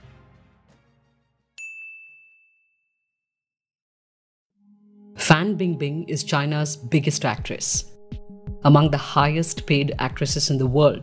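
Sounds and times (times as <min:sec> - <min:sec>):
background music: 0:00.0 - 0:01.6, 0:04.6 - 0:11.0
bright ding: 0:01.6 - 0:03.1.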